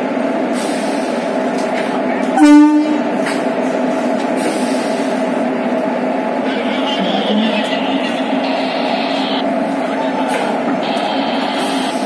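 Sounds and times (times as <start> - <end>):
electric locomotive humming: 0.0 - 12.0
train horn blast: 2.4 - 3.2.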